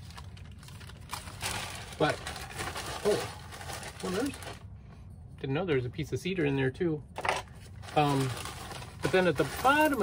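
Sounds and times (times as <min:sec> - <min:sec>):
plastic bag crinkling: 0:00.0 - 0:04.7, 0:07.7 - 0:10.0.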